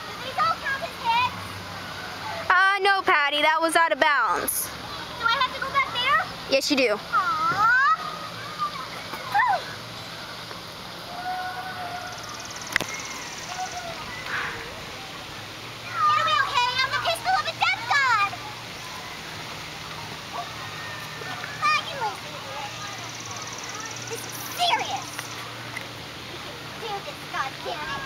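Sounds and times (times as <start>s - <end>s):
background voices and calls: 0.0s - 28.0s
steady hiss: 0.0s - 28.0s.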